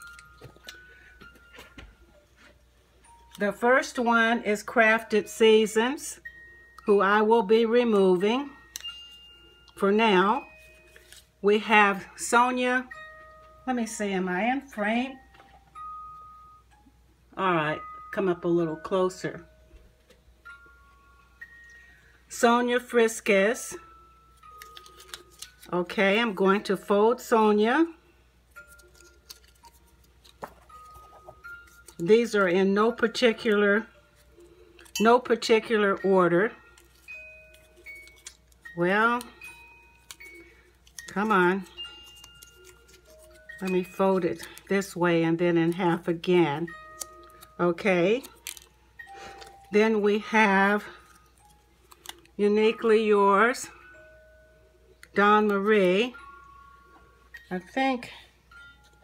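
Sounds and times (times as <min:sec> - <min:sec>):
paper crinkling: 0:10.6 - 0:11.4, 0:24.4 - 0:26.0, 0:28.6 - 0:32.2, 0:36.7 - 0:44.9, 0:45.6 - 0:49.7, 0:50.8 - 0:52.4
small clicks of folding paper: 0:24.5 - 0:25.8, 0:28.6 - 0:32.1, 0:36.8 - 0:38.7, 0:40.0 - 0:41.3, 0:42.0 - 0:43.6, 0:48.2 - 0:48.7, 0:51.0 - 0:52.4.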